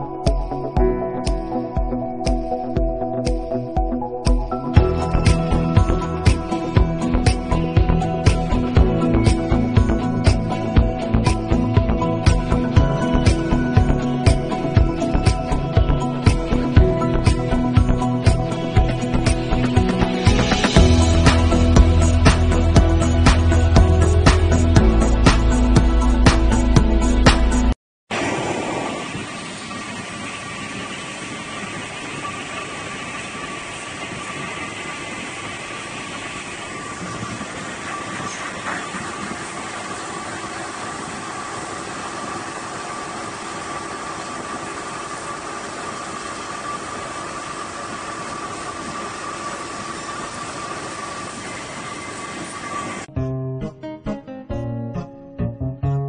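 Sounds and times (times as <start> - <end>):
faint steady whine: 28.1 - 53.1
guitar music: 53.1 - 56.0.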